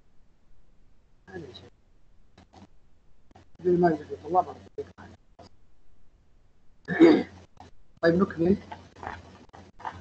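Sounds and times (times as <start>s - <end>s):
man clearing his throat: 6.9s - 7.4s.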